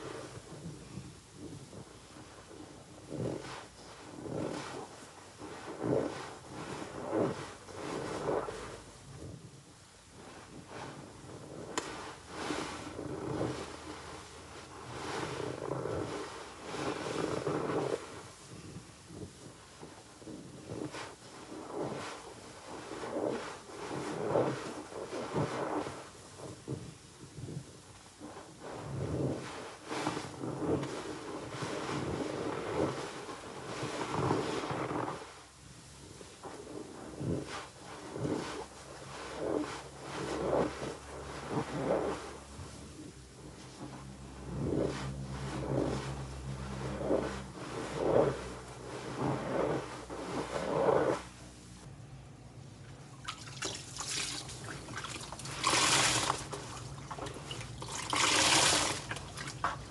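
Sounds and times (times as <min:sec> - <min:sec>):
sponge squishing in soap suds: 0:00.0 - 0:51.8, 0:52.8 - 0:59.9.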